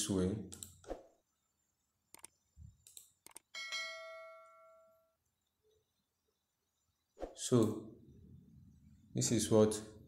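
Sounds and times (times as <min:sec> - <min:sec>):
mouse clicks: 0:02.1 - 0:03.5.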